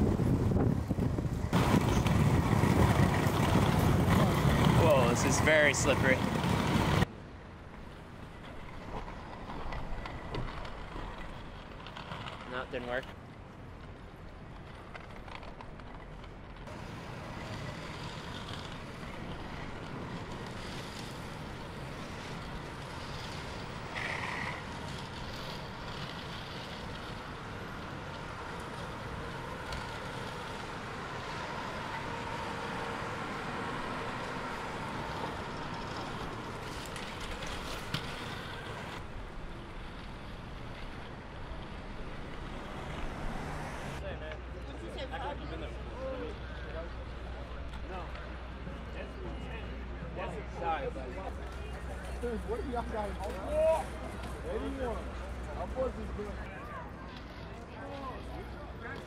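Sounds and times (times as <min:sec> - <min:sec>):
city street traffic: 0:00.0 - 0:59.0.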